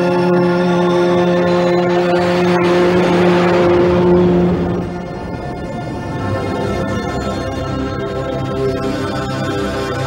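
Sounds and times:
low drone with overtones: 0.0s - 10.0s
rush of noise: 1.6s - 9.1s.

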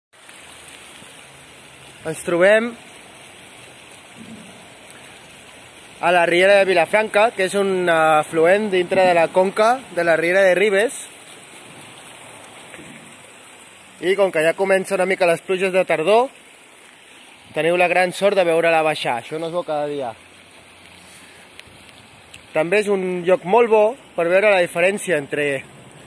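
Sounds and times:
creek water running: 0.1s - 26.0s.

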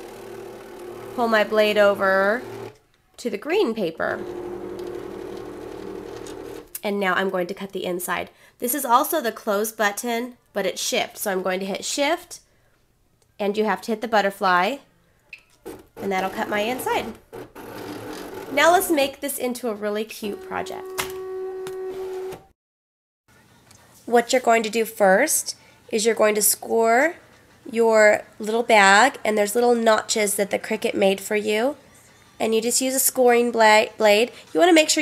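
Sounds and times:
cutting machine motor whirring: 0.0s - 2.8s, 4.1s - 6.7s
cutting machine motor whine: 4.2s - 6.7s.

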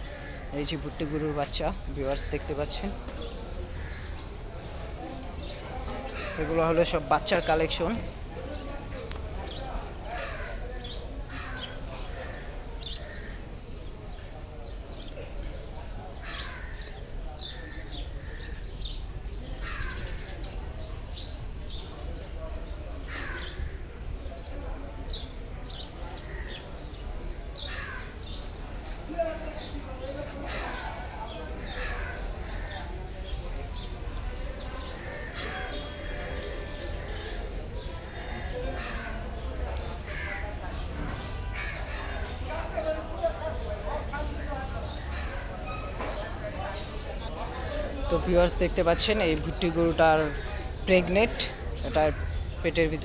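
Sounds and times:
birds calling: 0.0s - 53.0s
crow cawing: 11.3s - 11.8s, 16.2s - 16.9s, 34.9s - 37.5s, 40.1s - 40.5s, 41.5s - 42.3s.

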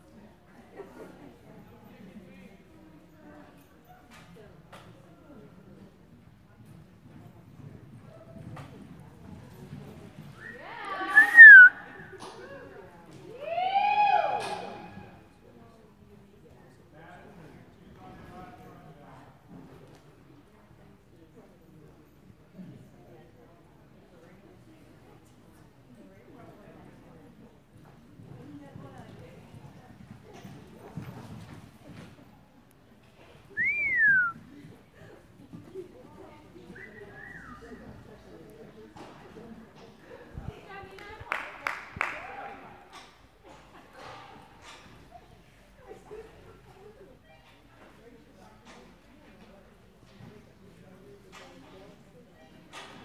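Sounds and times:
person whistling: 11.2s - 11.7s, 33.6s - 34.4s
loud wavering whistle: 11.2s - 11.8s.

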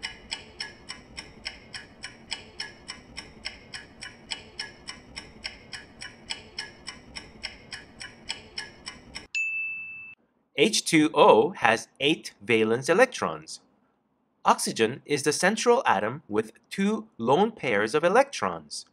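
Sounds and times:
clock ticking rapidly: 0.0s - 9.3s.

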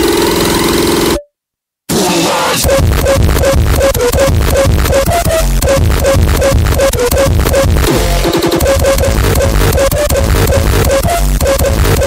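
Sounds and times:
hard electronic dance music: 1.9s - 12.0s
buzzing synth note: 2.6s - 12.0s.

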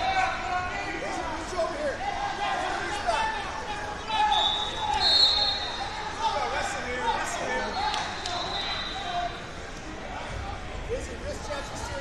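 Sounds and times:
voices in a hall: 0.0s - 12.0s.

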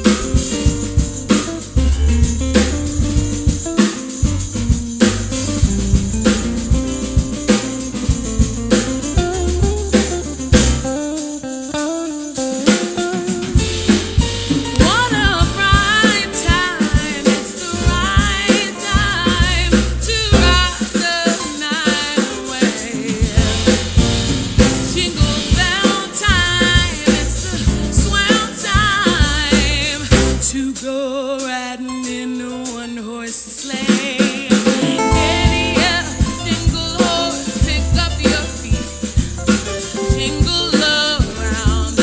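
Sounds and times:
electric guitar lead: 0.0s - 21.6s, 34.5s - 42.0s
live band music: 0.0s - 42.0s
woman singing with vibrato: 14.7s - 39.4s, 40.0s - 42.0s.

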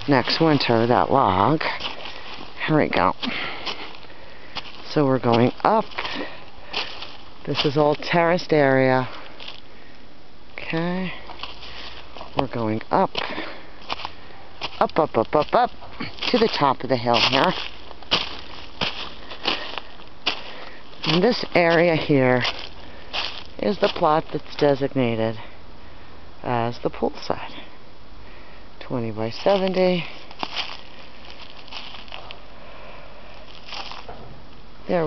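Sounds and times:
footsteps on snow: 0.0s - 9.7s, 11.1s - 24.9s, 29.3s - 32.5s, 33.2s - 34.2s
outdoor background noise: 0.0s - 35.0s
person breathing: 1.6s - 2.6s, 3.2s - 4.8s, 5.9s - 7.2s, 9.0s - 10.2s, 11.0s - 12.2s, 13.2s - 14.6s, 18.4s - 21.0s, 22.5s - 23.5s, 25.4s - 26.4s, 27.5s - 28.8s, 31.9s - 33.9s.

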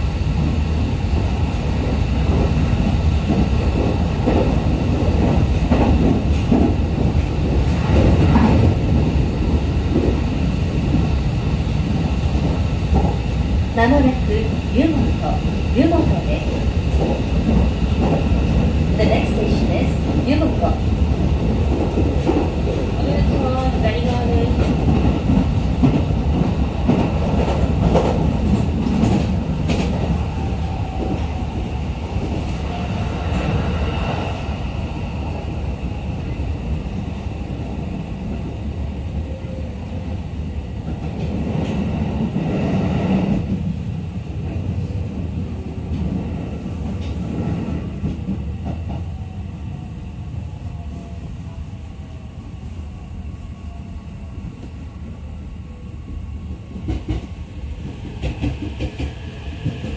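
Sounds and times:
train wheels rumbling on rail: 0.0s - 59.9s.

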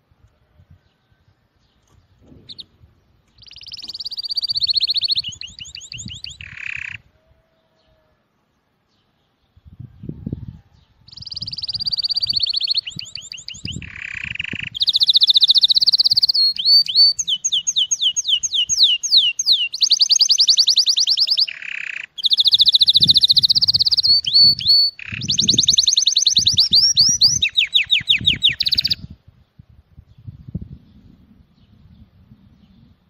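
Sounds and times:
canary singing trills: 1.8s - 8.1s, 9.3s - 29.1s.

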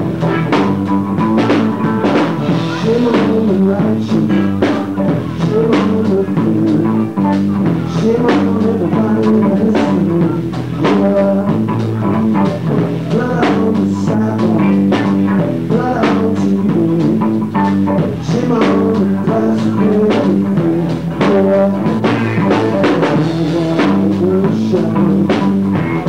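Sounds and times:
drum and cymbal hits: 0.0s - 26.0s
guitar: 0.0s - 26.0s
live blues-rock band: 0.0s - 26.0s.

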